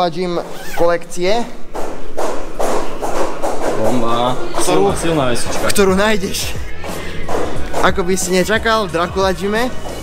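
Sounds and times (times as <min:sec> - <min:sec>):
music with driving percussive beat: 0:01.7 - 0:10.0.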